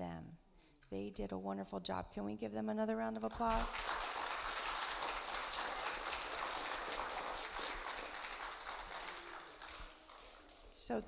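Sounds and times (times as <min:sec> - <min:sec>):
audience applauding: 0:03.4 - 0:10.8.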